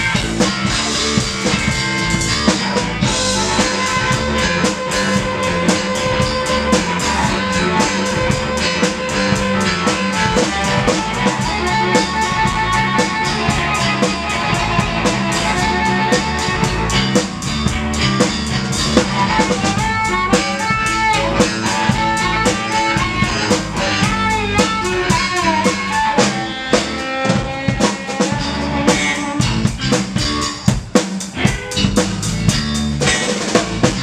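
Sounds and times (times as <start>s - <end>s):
drum kit groove: 0.0s - 34.0s
electric guitar with bent notes: 0.0s - 34.0s.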